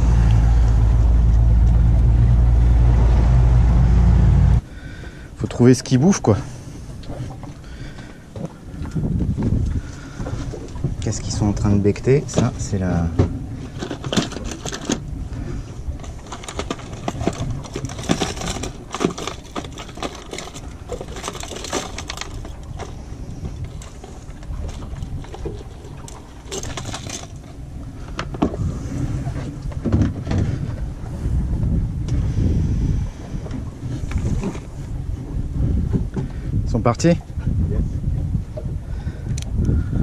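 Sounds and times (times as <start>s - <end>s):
wind buffeting microphone: 0.0s - 40.0s
plastic lures rattling in box: 13.8s - 15.0s, 16.0s - 23.0s, 23.6s - 27.5s.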